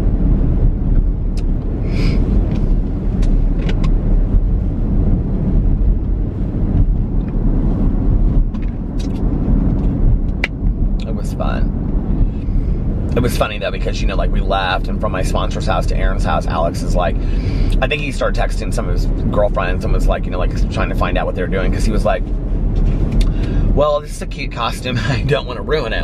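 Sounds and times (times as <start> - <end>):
car engine and road noise: 0.0 - 26.0.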